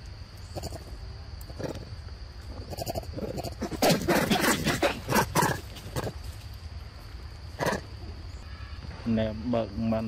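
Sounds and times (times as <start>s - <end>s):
macaque calls: 0.5s - 0.9s, 2.5s - 6.2s, 7.6s - 7.9s.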